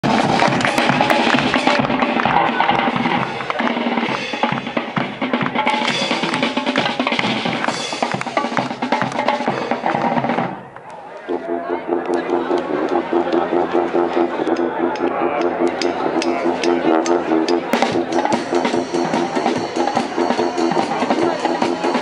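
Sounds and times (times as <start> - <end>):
brass band playing: 0.0 - 10.7, 11.3 - 22.0.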